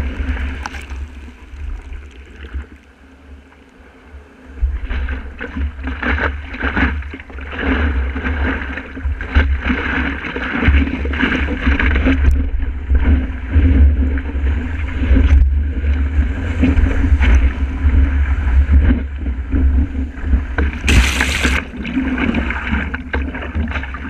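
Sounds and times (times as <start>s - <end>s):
water rushing and splashing: 0.0s - 3.4s, 19.7s - 24.0s.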